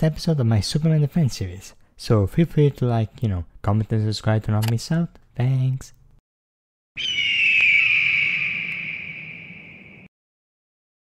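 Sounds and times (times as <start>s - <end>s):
hawk screech: 7.0s - 10.1s.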